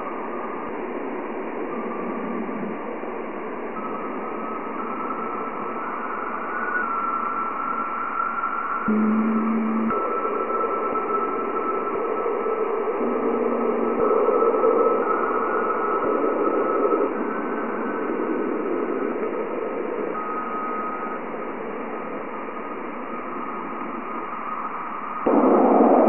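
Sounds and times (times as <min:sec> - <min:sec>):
pure tones stepping in pitch: 0:08.9 - 0:10.7.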